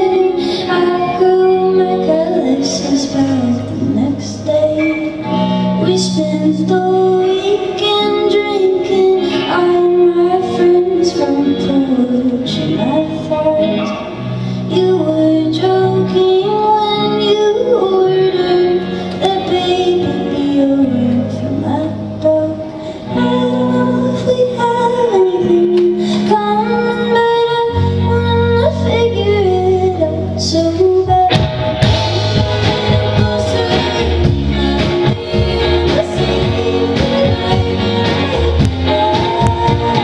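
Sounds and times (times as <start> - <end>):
indie rock band playing: 0.0 - 40.0
woman singing: 0.0 - 40.0.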